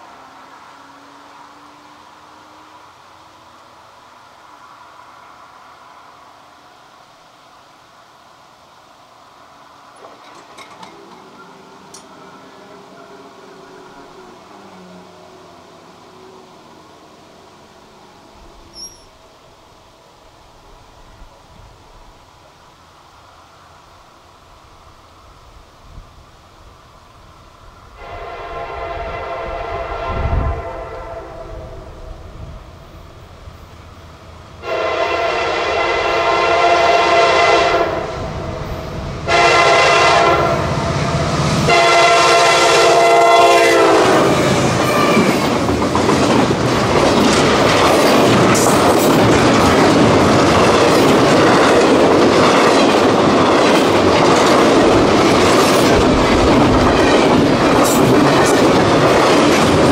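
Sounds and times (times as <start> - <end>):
train wheels clattering on rails: 9.9 - 13.0, 43.7 - 59.9
locomotive air horn blasts: 28.0 - 32.1, 34.6 - 38.2, 39.3 - 40.8, 41.7 - 45.4.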